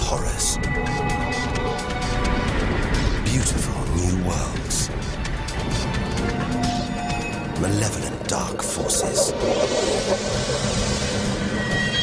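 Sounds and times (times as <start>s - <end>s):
low drone: 0.0s - 12.0s
thin high tone: 6.8s - 12.0s
dense rushing rumble: 7.2s - 12.0s.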